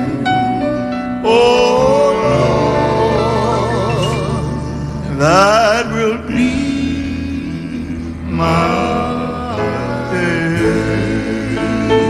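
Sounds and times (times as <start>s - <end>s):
male vocal quartet singing: 0.0s - 12.0s.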